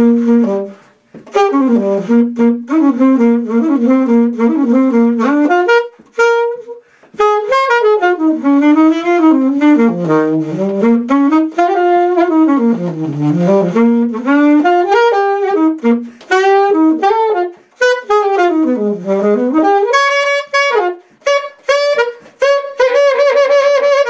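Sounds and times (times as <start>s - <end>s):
alto saxophone jazz solo: 0.0s - 24.0s.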